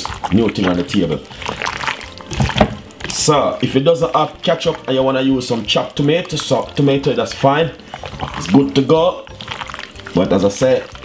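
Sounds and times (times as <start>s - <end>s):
wet squelching of meat in marinade: 0.0s - 11.0s.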